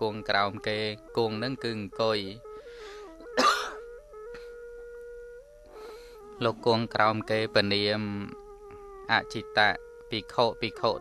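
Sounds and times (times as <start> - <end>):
sustained background music note: 0.0 - 11.0
man clearing throat: 3.4 - 3.8.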